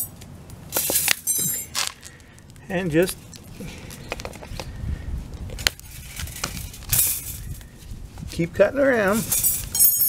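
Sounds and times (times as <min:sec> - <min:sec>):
metallic clinks of wire: 0:00.8 - 0:01.8, 0:09.3 - 0:10.0.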